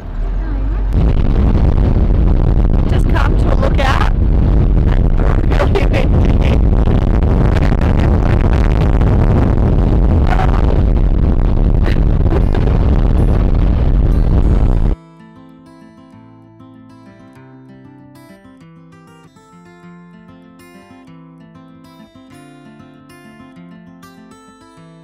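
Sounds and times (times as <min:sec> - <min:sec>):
wind buffeting microphone: 0:00.0 - 0:15.0
woman's voice: 0:00.3 - 0:01.0, 0:02.8 - 0:04.2, 0:04.9 - 0:06.6
quiet acoustic guitar music: 0:13.1 - 0:25.0.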